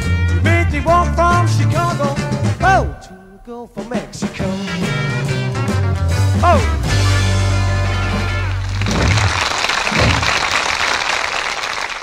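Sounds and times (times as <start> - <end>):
audience applauding: 8.1 - 12.0.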